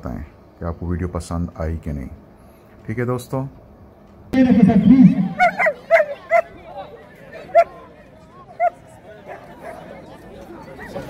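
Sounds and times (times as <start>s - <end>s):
dog barking: 5.3s - 6.5s.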